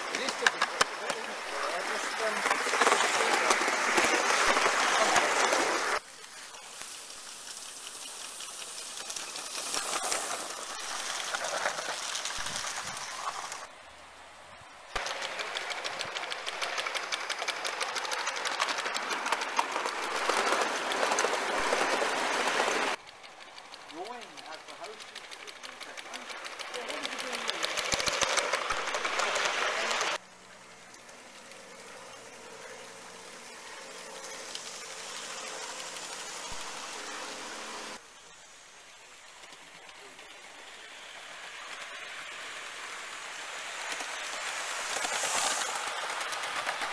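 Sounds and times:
model train wheels clattering on rails: 0.0s - 13.7s, 14.9s - 46.9s.

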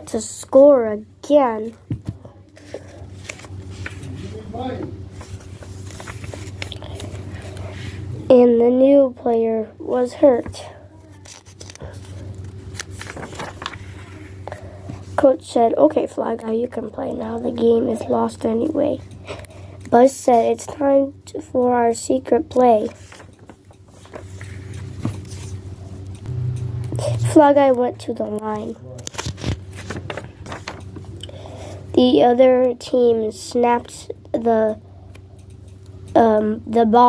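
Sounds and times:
steady low hum: 0.0s - 37.0s
book rustling and clicks: 1.9s - 4.1s, 5.1s - 7.6s, 10.4s - 15.0s, 22.8s - 25.6s, 28.3s - 31.1s.

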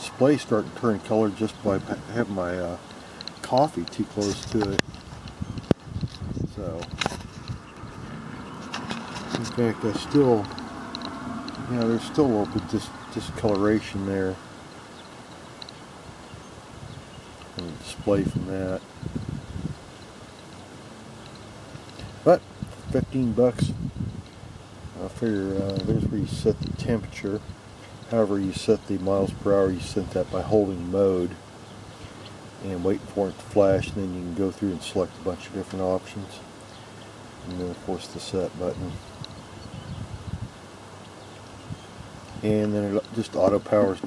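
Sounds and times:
faint outdoor background: 0.0s - 44.0s
wind buffeting microphone: 3.8s - 14.4s, 16.1s - 20.0s, 21.7s - 27.7s, 38.6s - 40.7s, 41.6s - 44.0s.

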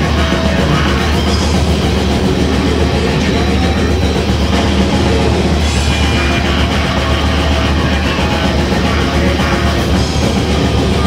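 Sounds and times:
distorted electric guitar: 0.0s - 11.0s
drums: 0.0s - 11.0s.

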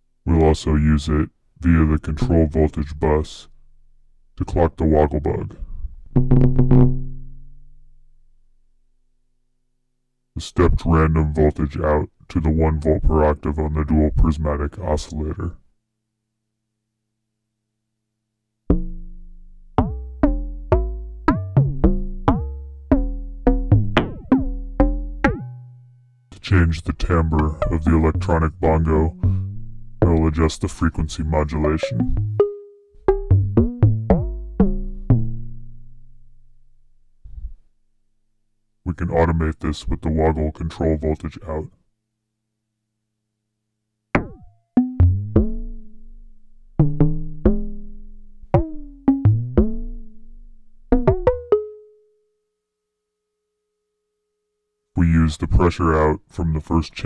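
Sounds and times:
electronic bongo hits: 6.2s - 7.6s, 18.7s - 25.6s, 31.8s - 35.7s, 44.1s - 51.6s.

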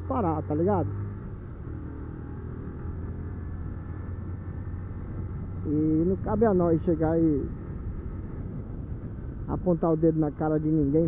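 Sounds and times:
motorcycle engine running: 0.0s - 11.0s
road noise: 0.0s - 11.0s.

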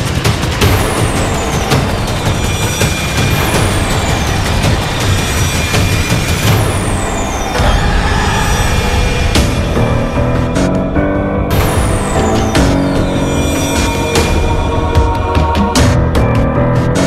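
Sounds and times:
dense noisy bed with low pulse: 0.0s - 17.0s
swooshes falling in pitch: 0.6s - 16.0s.

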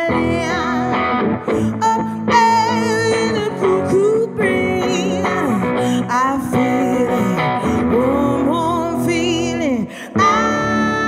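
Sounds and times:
electric guitar chords: 0.0s - 11.0s
person singing with vibrato: 0.0s - 11.0s.

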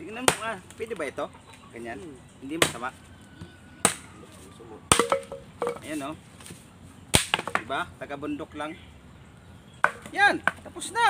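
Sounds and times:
machete chopping wood: 0.2s - 0.8s, 2.6s - 2.9s, 3.8s - 4.1s, 4.9s - 5.9s, 7.1s - 7.7s, 9.8s - 10.6s.

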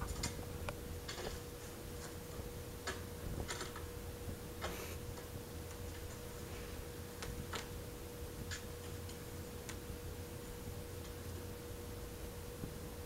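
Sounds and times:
faint high hum: 0.0s - 13.0s.

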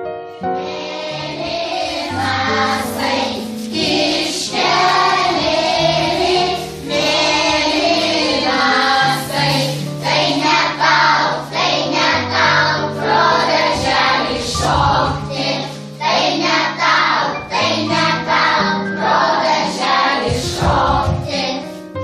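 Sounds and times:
children singing together: 0.5s - 21.8s
held low accompaniment notes: 1.2s - 11.8s.

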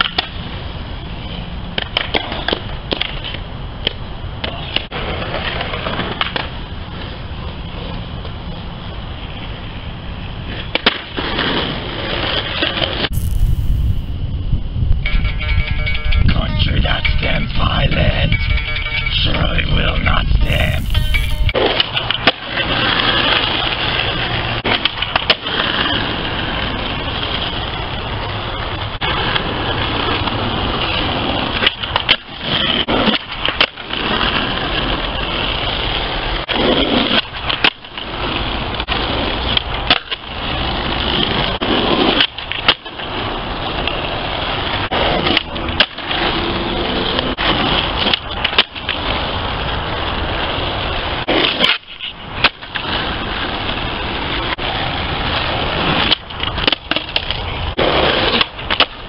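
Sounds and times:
skateboard clacks: 0.0s - 0.5s, 1.8s - 7.2s, 10.5s - 13.0s, 28.6s - 59.0s
skateboard wheels rolling on asphalt: 0.0s - 14.2s, 20.5s - 59.0s.

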